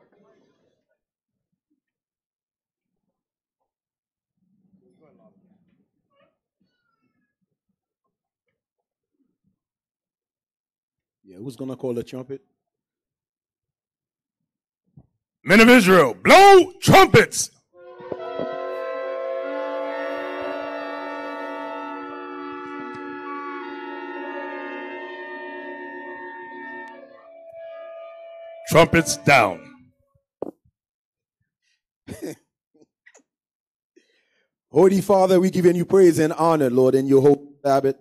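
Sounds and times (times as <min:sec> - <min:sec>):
trumpets holding a chord: 0:17.8 - 0:29.8.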